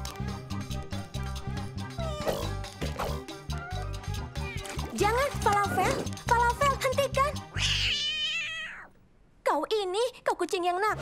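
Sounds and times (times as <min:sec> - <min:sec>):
background music: 0:00.0 - 0:07.8
cartoon cat meowing: 0:01.9 - 0:02.6, 0:07.5 - 0:08.9.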